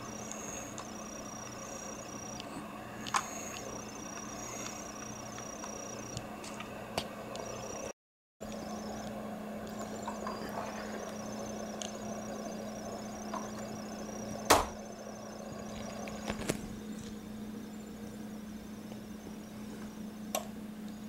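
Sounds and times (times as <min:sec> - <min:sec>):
small electric motor humming: 0:00.0 - 0:21.0.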